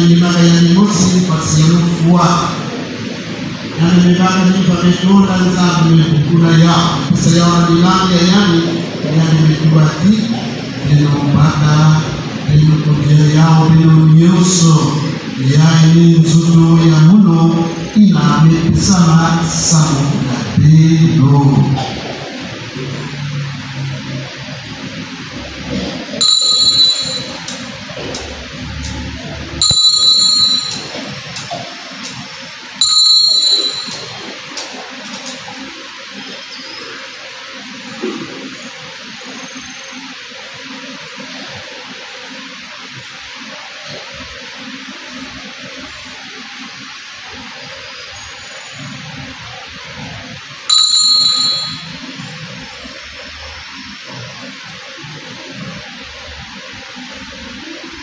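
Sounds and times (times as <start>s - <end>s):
altar bell ringing: 26.2s - 27.6s, 29.6s - 31.0s, 32.8s - 34.2s, 50.7s - 52.2s.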